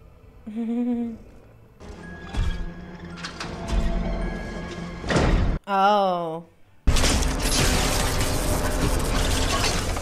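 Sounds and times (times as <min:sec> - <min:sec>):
rapid mechanical clicking and grinding: 0:06.9 - 0:10.0.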